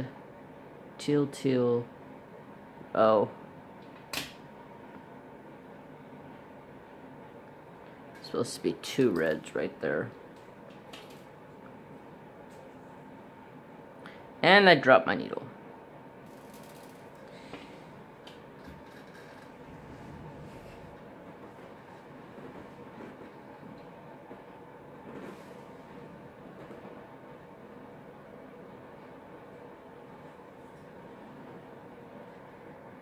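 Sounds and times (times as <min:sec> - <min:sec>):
faint room hum: 0:00.0 - 0:33.0.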